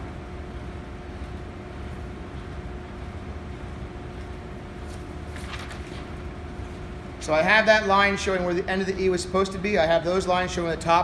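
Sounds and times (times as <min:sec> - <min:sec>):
room ventilation hum: 0:00.0 - 0:11.0
paper rustling: 0:04.8 - 0:06.2.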